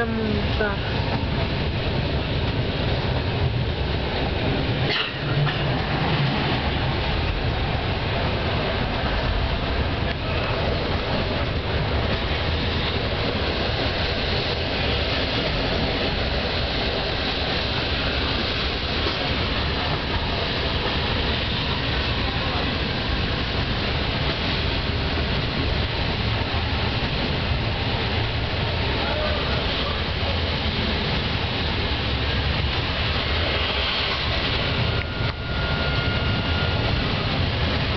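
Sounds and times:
train rumbling along track: 0.0 - 37.9.

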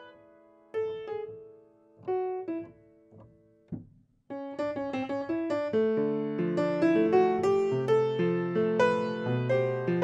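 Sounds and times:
solo grand piano improvisation: 0.0 - 10.0.

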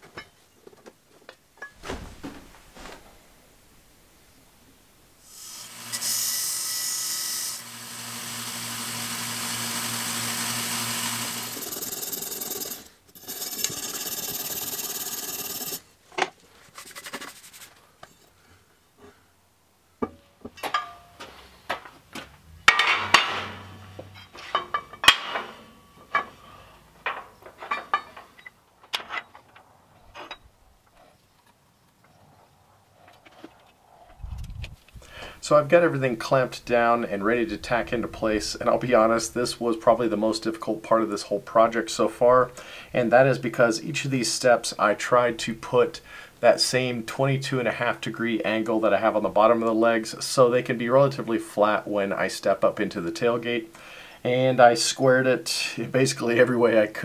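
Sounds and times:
power tool cutting metal tubing: 5.2 - 15.8
metal pieces knocking and clinking: 20.0 - 21.3, 22.7 - 26.4, 27.0 - 29.6.

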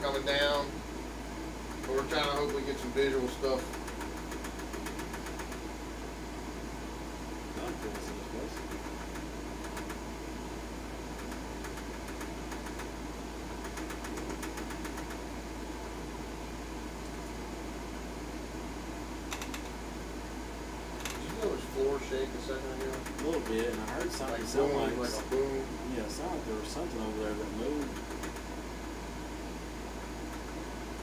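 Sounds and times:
ventilation air hum: 0.0 - 31.0.

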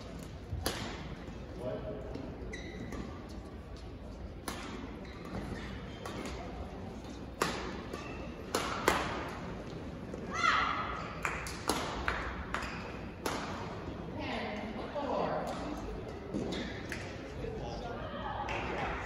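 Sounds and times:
people talking in background: 0.0 - 19.0.

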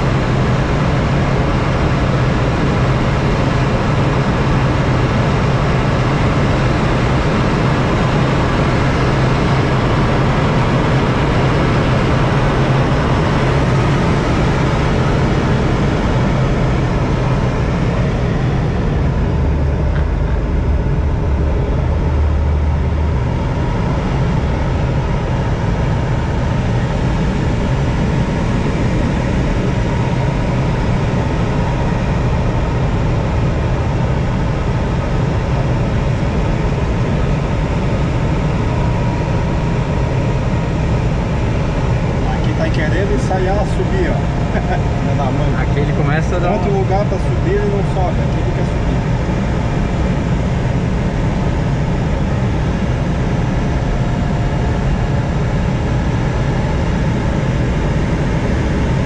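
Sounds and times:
air rushing around glider: 0.0 - 59.0
low rumble: 3.6 - 59.0.

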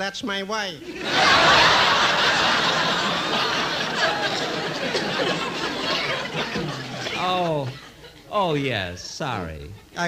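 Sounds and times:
audience laughing: 0.8 - 8.3.

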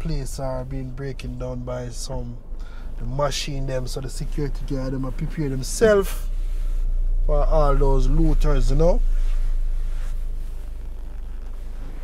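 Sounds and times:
car rumble: 0.0 - 12.0.

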